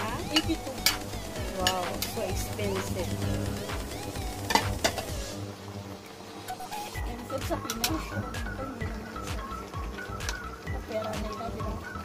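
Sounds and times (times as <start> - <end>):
steady low hum: 0.0 - 10.8
soup simmering: 3.1 - 12.0.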